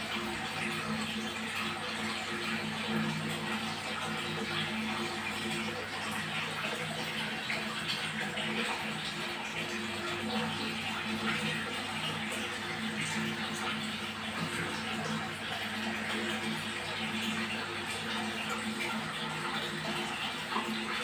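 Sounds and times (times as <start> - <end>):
water rushing in fish tank: 0.0 - 21.0.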